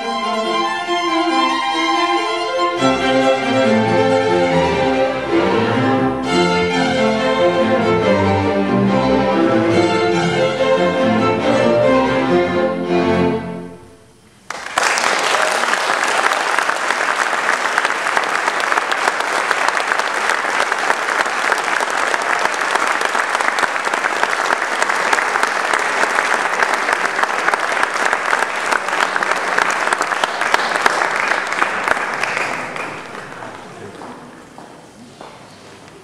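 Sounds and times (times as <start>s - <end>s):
string quintet chord: 0.0s - 14.1s
audience applauding: 14.5s - 34.6s.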